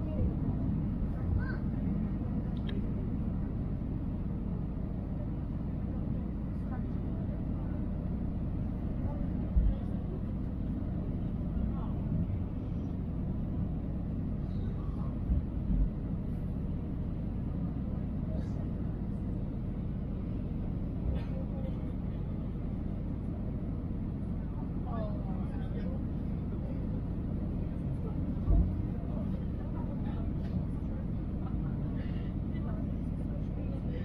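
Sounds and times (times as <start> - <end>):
airliner cabin rumble: 0.0 - 34.0.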